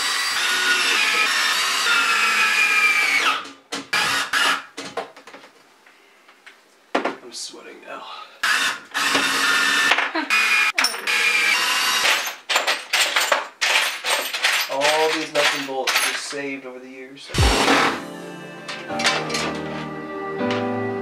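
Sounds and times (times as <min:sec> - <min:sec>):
cordless power drill running: 0:00.0 - 0:03.4, 0:08.4 - 0:12.1.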